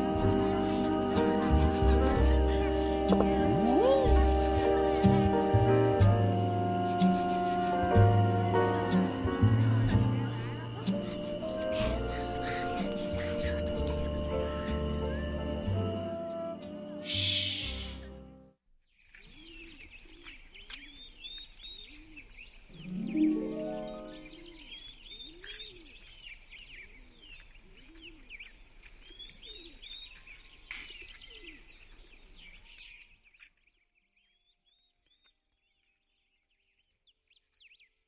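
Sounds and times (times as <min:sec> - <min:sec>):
low cooing calls: 0:00.0 - 0:18.2
small birds chirping: 0:00.0 - 0:18.3, 0:18.9 - 0:38.0
loud rising bird call: 0:16.9 - 0:18.2.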